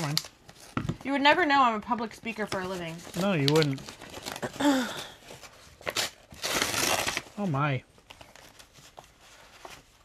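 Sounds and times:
paper envelope rustling: 0:05.2 - 0:10.0.

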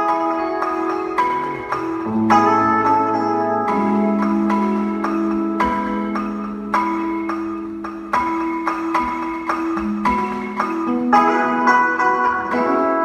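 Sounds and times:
held low tones: 0:00.0 - 0:13.0.

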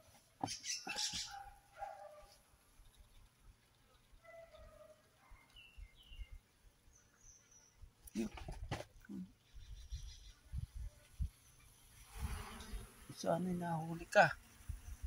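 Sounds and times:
faint bird chirps: 0:00.4 - 0:08.3, 0:09.1 - 0:11.7.

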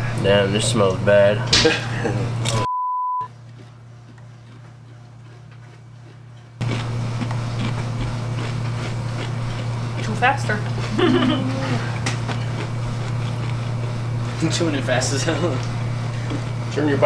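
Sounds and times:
low hum and room noise: 0:00.0 - 0:17.0
high-pitched censor bleep: 0:02.6 - 0:03.3.

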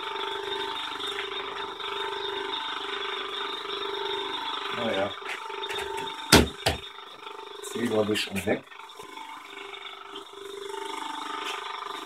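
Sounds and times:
faint machine hum: 0:00.0 - 0:12.0
sharp knocks: 0:05.7 - 0:06.8.

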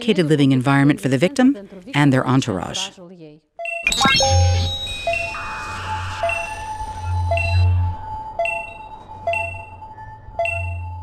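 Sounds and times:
rising swoosh with bell pings: 0:03.8 - 0:11.0
background music: 0:03.9 - 0:11.0.

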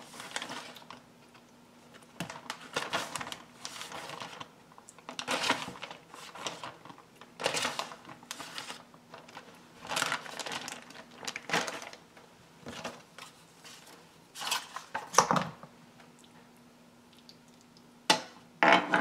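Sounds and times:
plastic bag crinkling: 0:00.0 - 0:01.1, 0:02.0 - 0:15.1.

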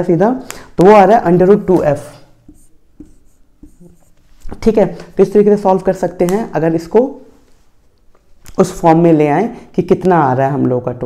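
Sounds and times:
marker writing on whiteboard: 0:00.9 - 0:05.0.

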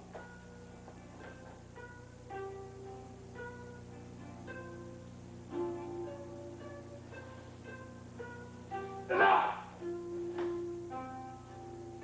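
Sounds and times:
plucked string background music: 0:00.0 - 0:12.0.

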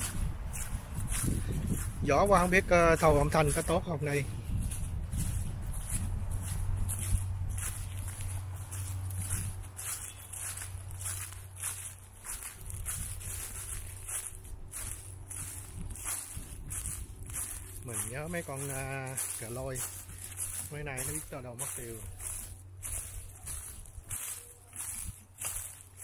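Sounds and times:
wind buffeting microphone: 0:00.0 - 0:25.7
person walking footsteps: 0:00.0 - 0:26.0.

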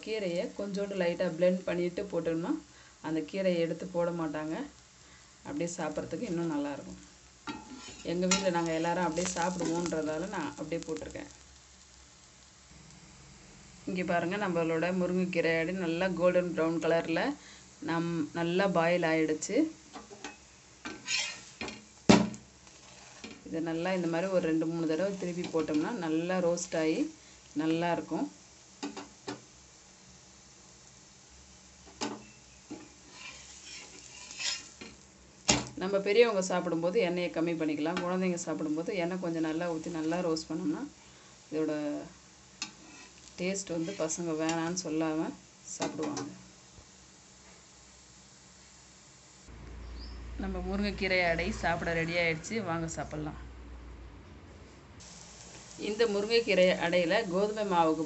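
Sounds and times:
pancake sizzling on a griddle: 0:00.0 - 0:51.7, 0:55.0 - 0:58.0
metal clank on pan: 0:07.5 - 0:08.5
metal spatula scraping pan: 0:07.5 - 0:08.6, 0:20.0 - 0:21.8, 0:22.7 - 0:23.4, 0:32.2 - 0:35.0, 0:42.6 - 0:44.2.

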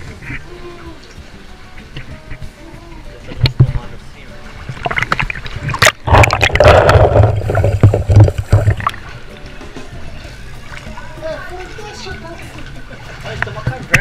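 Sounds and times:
water splashing: 0:00.0 - 0:14.0
muffled underwater rushing: 0:03.3 - 0:11.8.

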